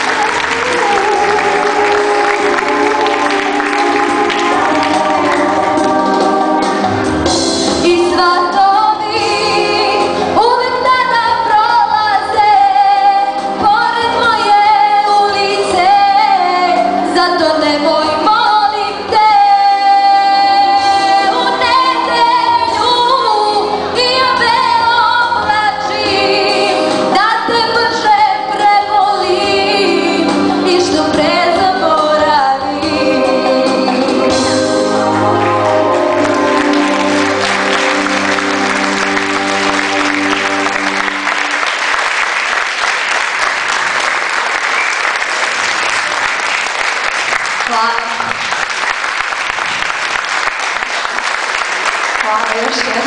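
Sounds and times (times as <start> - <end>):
instrumental accompaniment: 0.0 - 47.1
girl singing a ballad: 7.8 - 34.5.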